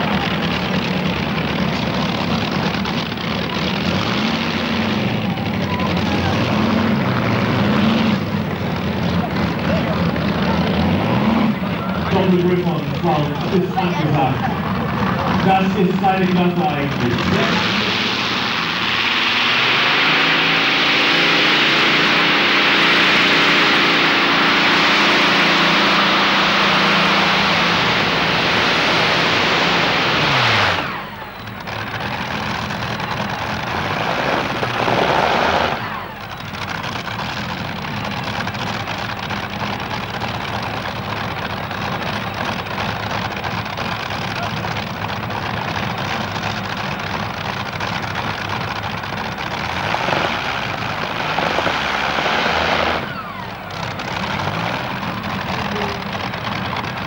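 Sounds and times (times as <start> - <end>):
tractor engine at full power: 0.0 - 57.0
tractor engine idling: 0.0 - 57.0.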